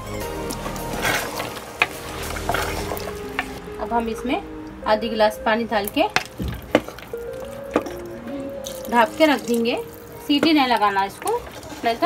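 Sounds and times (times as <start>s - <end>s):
background music: 0.0s - 12.0s
wooden spatula stirring curry: 0.4s - 3.6s, 6.1s - 12.0s.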